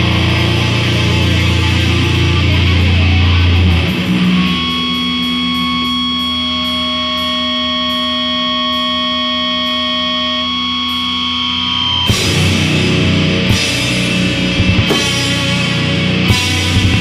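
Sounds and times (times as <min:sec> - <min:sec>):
distorted guitar ringing notes: 0:00.0 - 0:17.0
heavy metal band playing: 0:00.0 - 0:17.0.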